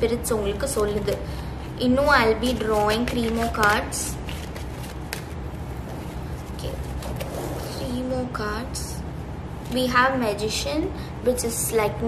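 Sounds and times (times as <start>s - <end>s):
cards being shuffled: 2.0s - 7.8s.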